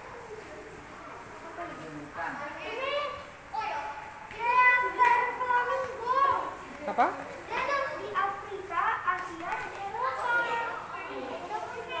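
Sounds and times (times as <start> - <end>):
children talking and calling out: 0.0 - 1.6, 2.4 - 12.0.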